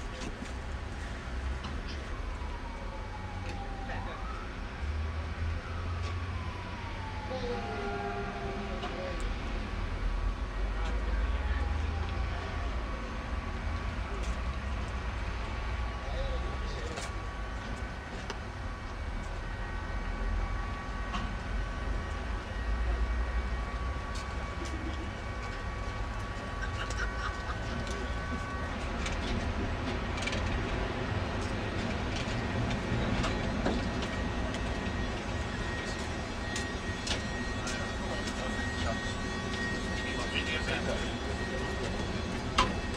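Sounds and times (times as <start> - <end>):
tram rumbling: 0.0 - 42.9
tram whine: 0.0 - 42.9.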